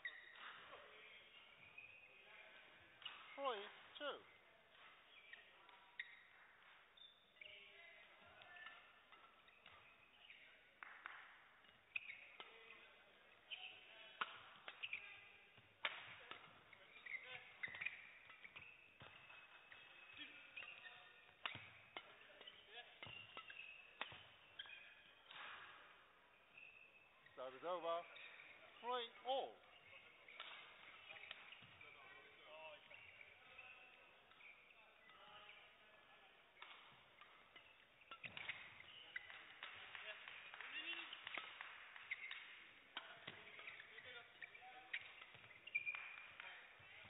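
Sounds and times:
shoes squeaking on court floor: 0.0 - 47.0
rackets striking shuttlecock: 2.8 - 7.2, 7.9 - 27.4, 29.8 - 35.2, 36.5 - 47.0.

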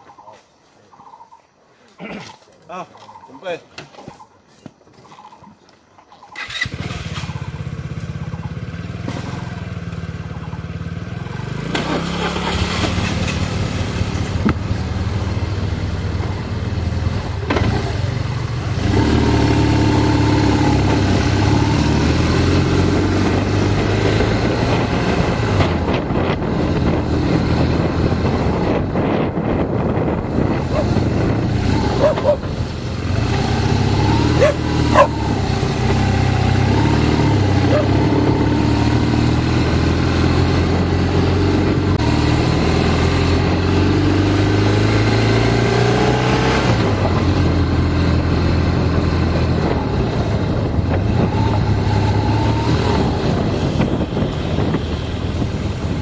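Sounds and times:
motorcycle engine: 6.3 - 56.0.

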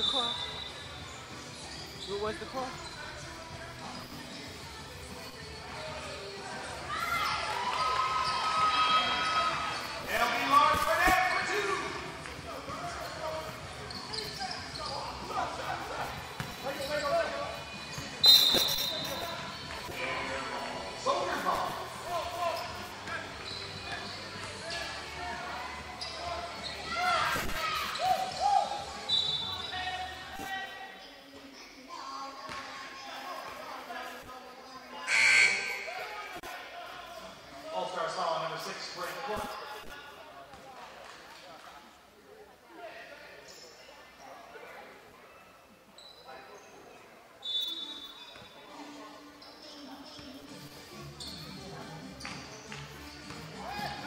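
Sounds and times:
voices echoing in hall: 0.0 - 54.0
sneaker squeaks on hardwood: 13.7 - 15.3, 16.3 - 19.9, 22.6 - 24.5, 35.1 - 35.9, 51.0 - 54.0
short high-pitched squeaks: 18.3 - 19.6.

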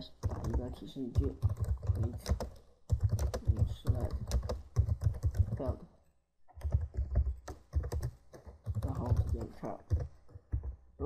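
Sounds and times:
computer keyboard typing: 0.2 - 5.8, 6.5 - 10.8.

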